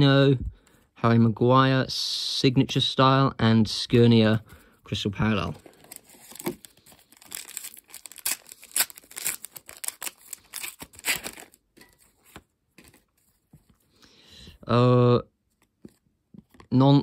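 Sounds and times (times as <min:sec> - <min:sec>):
faint wrapper rustles: 0:05.5 - 0:14.0
card pack wrapper ripping: 0:05.6 - 0:13.1.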